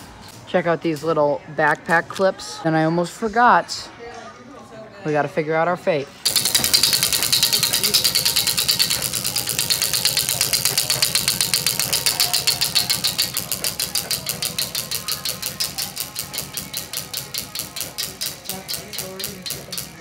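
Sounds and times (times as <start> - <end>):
prize wheel clicking: 6.3 - 20.0.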